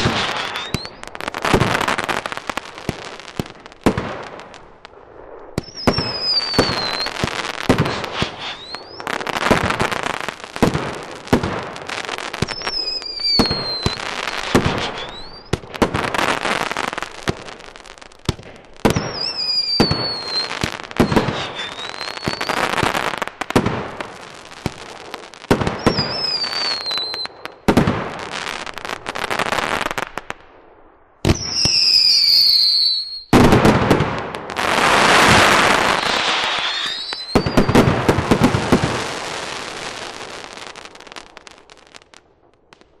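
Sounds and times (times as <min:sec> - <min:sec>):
firework crackling: 0:00.0 - 0:30.5, 0:31.2 - 0:43.0
whistling firework comets: 0:00.0 - 0:30.5, 0:31.2 - 0:43.0
fireworks bangs: 0:00.0 - 0:43.0.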